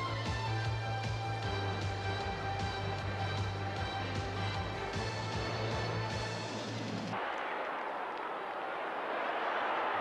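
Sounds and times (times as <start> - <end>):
broadcast graphics music: 0.0 - 7.2
large football crowd noise: 0.0 - 10.0.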